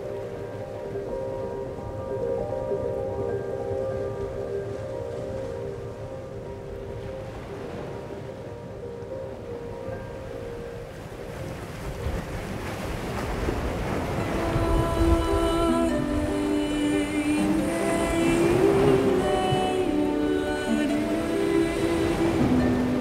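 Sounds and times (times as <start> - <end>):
ocean surf breaking: 0.0 - 23.0
soft music with held notes: 0.0 - 23.0.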